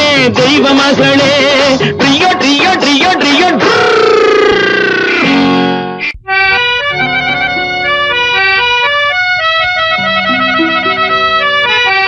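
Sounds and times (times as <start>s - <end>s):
held instrumental notes: 4.5s - 12.0s.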